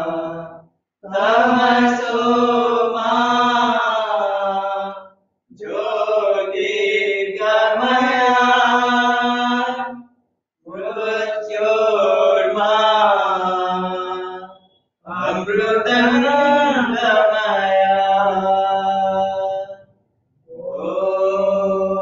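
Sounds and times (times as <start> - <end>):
person chanting: 0.0 - 9.9, 10.7 - 19.9, 20.5 - 22.0.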